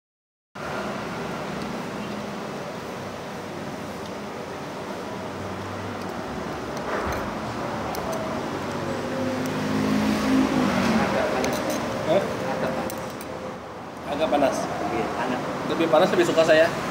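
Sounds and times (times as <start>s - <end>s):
rushing background noise: 0.6s - 16.9s.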